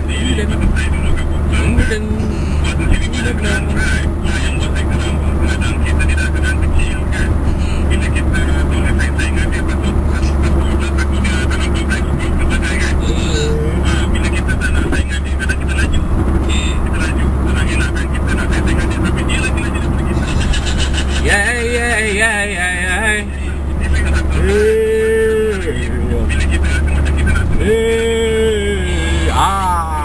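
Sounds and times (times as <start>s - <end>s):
car driving drone inside cabin: 0.0s - 30.0s
indistinct voices: 0.0s - 30.0s.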